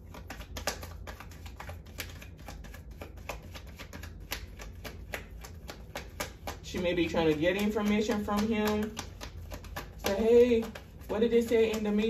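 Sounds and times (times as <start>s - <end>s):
cards being shuffled: 0.0s - 12.0s.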